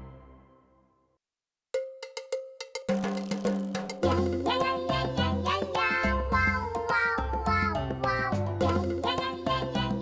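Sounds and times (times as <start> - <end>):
cartoon background music: 0.0 - 1.0, 4.0 - 10.0
sharp percussion strikes: 1.8 - 5.6.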